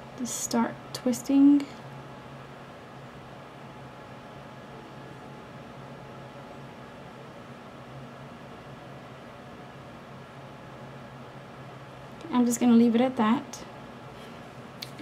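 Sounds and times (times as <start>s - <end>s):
faint hum: 0.0s - 15.0s.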